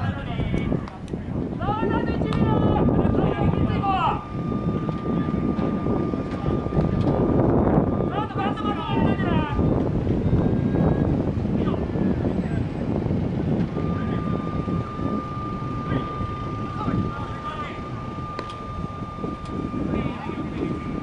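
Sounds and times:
wind buffeting microphone: 0:00.0 - 0:21.0
faint steady high tone: 0:01.7 - 0:13.0, 0:13.8 - 0:21.0.

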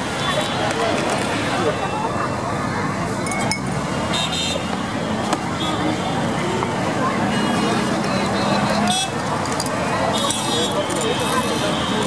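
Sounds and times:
background chatter: 0:00.0 - 0:12.0
traffic: 0:00.0 - 0:12.0
glasses clinking: 0:03.2 - 0:03.7.

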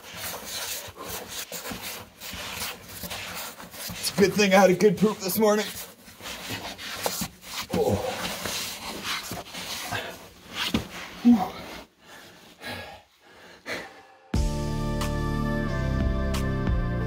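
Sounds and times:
clothing scraping against rock: 0:00.0 - 0:12.5
person grunting: 0:07.7 - 0:08.3, 0:11.2 - 0:11.7
panting breath: 0:11.4 - 0:14.3.

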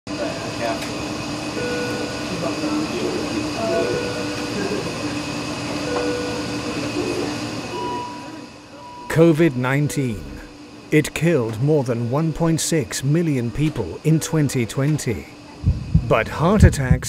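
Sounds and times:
indistinct voices: 0:05.9 - 0:17.0
low hum: 0:15.6 - 0:17.0
rumbling ambience: 0:15.6 - 0:17.0.

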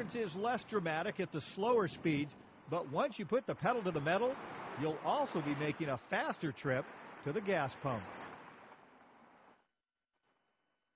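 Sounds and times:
highway traffic rush: 0:02.0 - 0:09.5.

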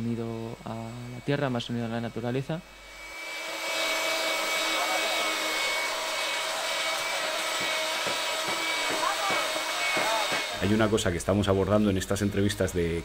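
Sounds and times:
small motor whining: 0:00.0 - 0:10.9.

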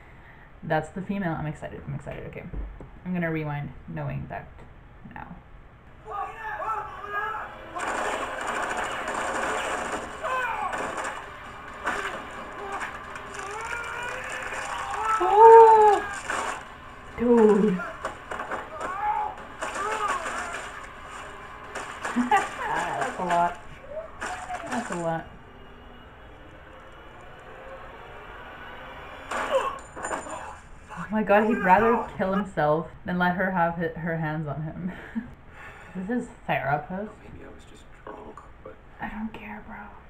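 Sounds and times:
steady background noise: 0:00.0 - 0:40.0
rapid mechanical rattle: 0:07.8 - 0:15.2, 0:17.9 - 0:25.0.

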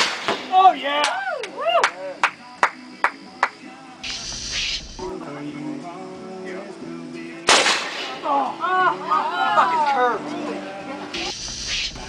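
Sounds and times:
person clapping: 0:01.0 - 0:03.6.

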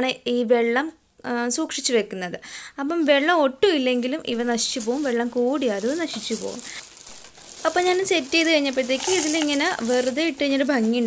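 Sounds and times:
woman speaking: 0:00.0 - 0:06.8, 0:07.6 - 0:11.0
light crackling hiss: 0:04.3 - 0:11.0.

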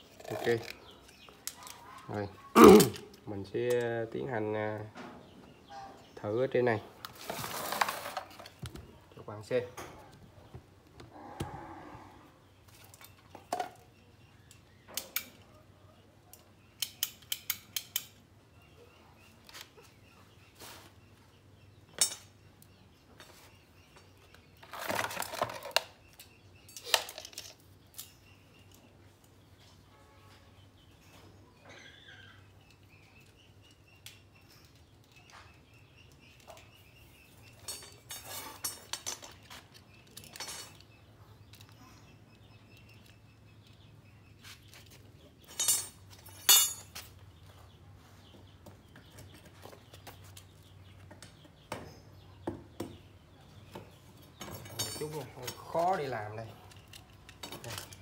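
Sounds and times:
handling knocks and clinks: 0:24.6 - 0:28.3, 0:37.4 - 0:41.8, 0:44.7 - 0:47.2, 0:53.7 - 0:56.0
faint bird chirps: 0:27.8 - 0:38.9.

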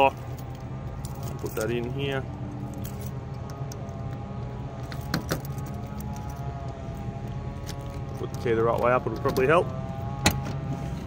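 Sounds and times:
steady low hum: 0:00.0 - 0:11.0
keys jangling on a ring: 0:02.7 - 0:03.2
key scraping in a lock: 0:04.8 - 0:06.4.

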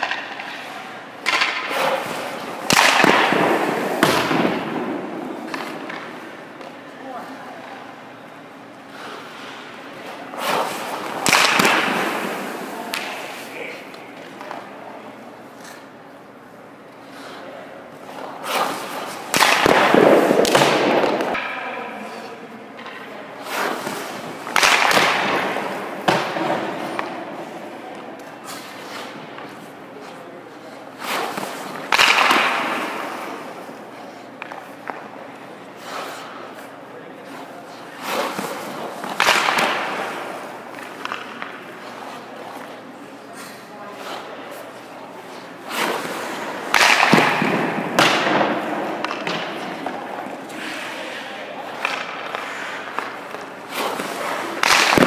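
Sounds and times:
skate blades scraping ice: 0:00.0 - 0:07.9, 0:08.8 - 0:16.2, 0:16.8 - 0:21.4, 0:23.4 - 0:55.0.

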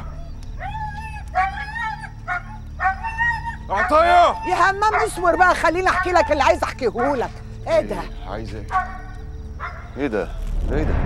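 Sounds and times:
dog whining: 0:00.0 - 0:07.2.

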